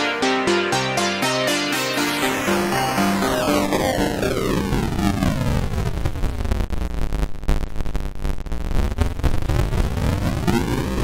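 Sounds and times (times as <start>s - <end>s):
gritty bitcrushed music loop: 0.0s - 4.9s
rising pitched whine: 0.0s - 5.9s.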